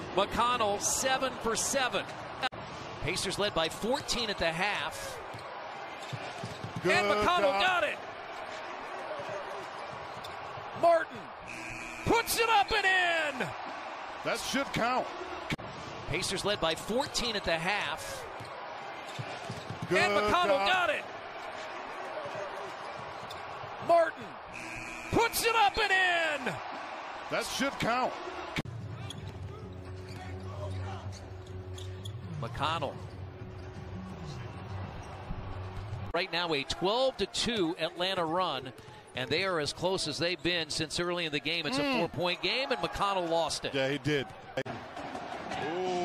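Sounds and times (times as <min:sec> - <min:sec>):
arena crowd noise: 0:00.0 - 0:31.5, 0:32.2 - 0:46.0
commentator speaking: 0:06.8 - 0:08.0, 0:19.9 - 0:21.0, 0:36.2 - 0:44.2
shoe squeaks: 0:29.0 - 0:32.4.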